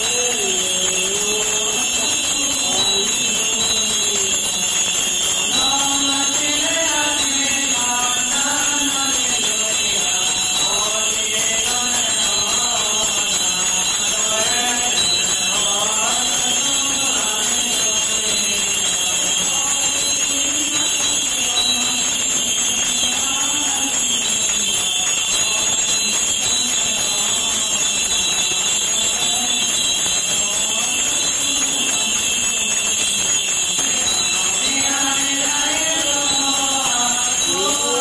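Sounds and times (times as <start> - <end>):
voices chanting: 0.0 - 24.4, 33.8 - 38.0.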